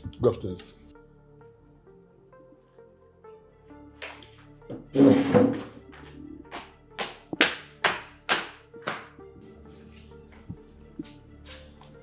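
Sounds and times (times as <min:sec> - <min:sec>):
background music: 0:00.0 - 0:12.0
sharp hand smacks: 0:06.5 - 0:09.1.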